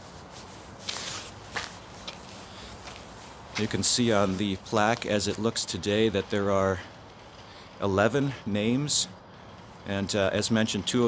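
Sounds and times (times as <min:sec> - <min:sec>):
footsteps scuffing on brick paving: 0:00.0 - 0:05.5
steady outdoor hiss: 0:00.0 - 0:11.0.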